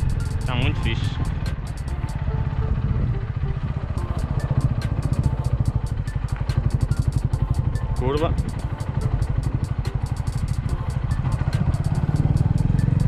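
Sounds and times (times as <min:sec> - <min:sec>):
motorcycle engine running: 0:00.0 - 0:13.0.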